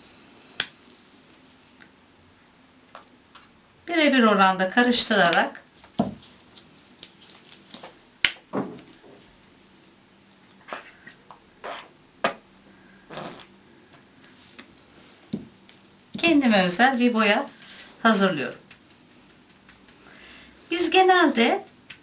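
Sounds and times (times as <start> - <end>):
paint squeezing rustles: 16.9 - 22.0.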